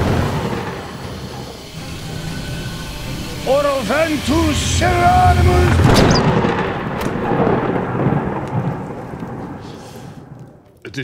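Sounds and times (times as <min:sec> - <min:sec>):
thunder-like rumbling crash: 0:00.0 - 0:02.4, 0:04.2 - 0:10.4.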